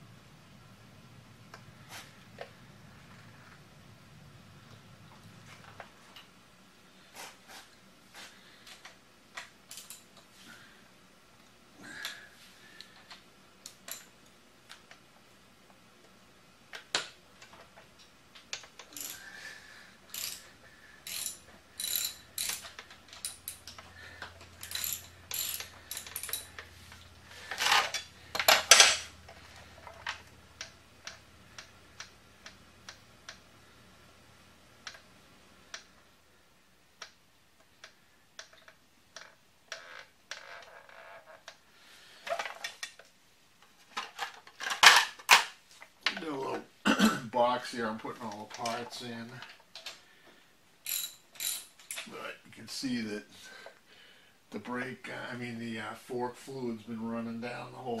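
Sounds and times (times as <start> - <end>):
hand ratchet clicking: 9.7 - 10.0, 18.5 - 19.4, 20.1 - 26.7, 50.8 - 52.1.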